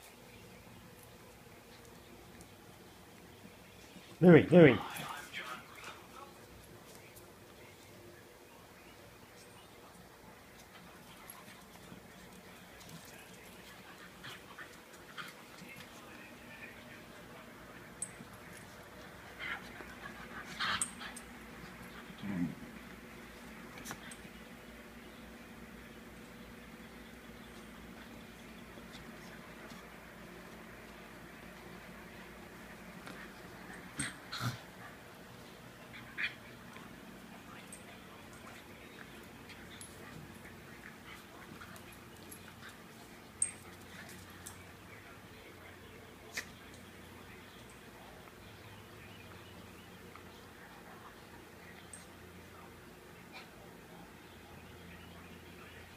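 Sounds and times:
small dogs play-wrestling: 4.8 - 55.9.

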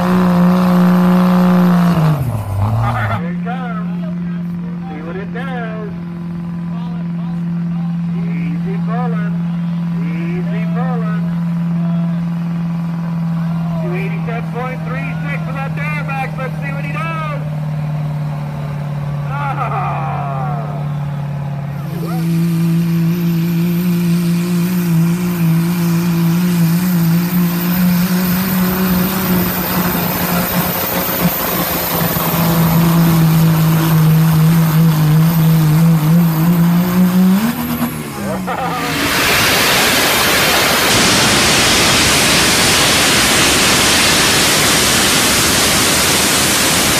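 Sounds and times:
diesel truck engine at full throttle: 0.0 - 46.9
people's voices: 19.3 - 22.6, 38.1 - 39.3
loud even rushing noise: 37.7 - 46.9.

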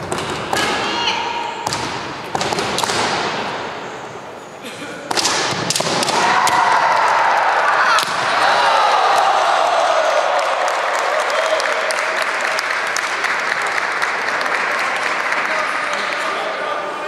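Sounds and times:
bamboo swords knocking: 5.1 - 6.6.

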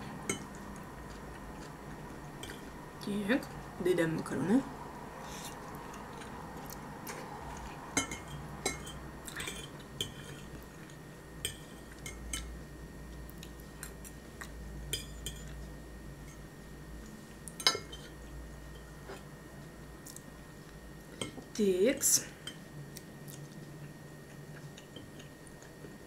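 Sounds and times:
chewing: 0.3 - 2.7, 5.3 - 7.8, 22.9 - 25.9.

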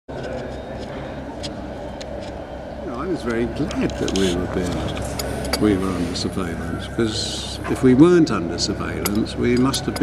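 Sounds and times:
murmur of distant voices: 0.1 - 10.0.

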